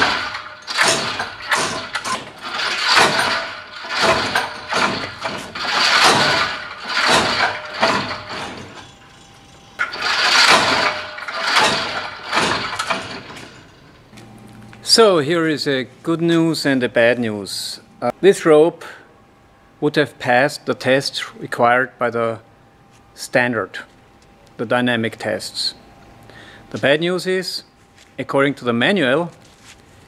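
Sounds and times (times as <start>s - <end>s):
motor running in surges: 0.0s - 13.8s.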